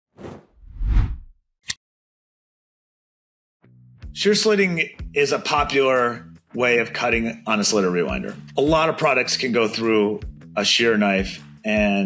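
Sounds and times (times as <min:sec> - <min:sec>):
whoosh: 0:00.2 - 0:01.3.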